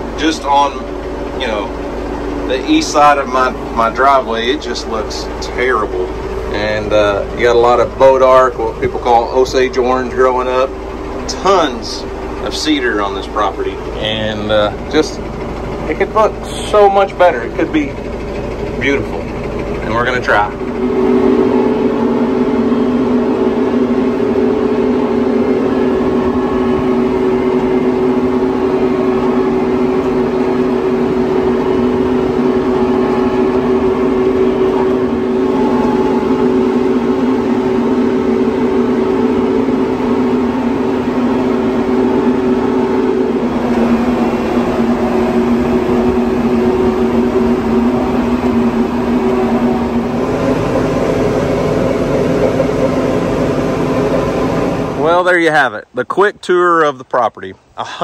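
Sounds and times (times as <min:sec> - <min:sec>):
tractor engine droning: 0:00.0 - 0:58.0.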